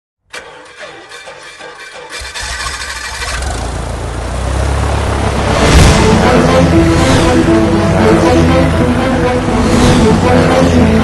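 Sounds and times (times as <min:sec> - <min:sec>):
engine cranking and starting: 0:00.2 - 0:04.1.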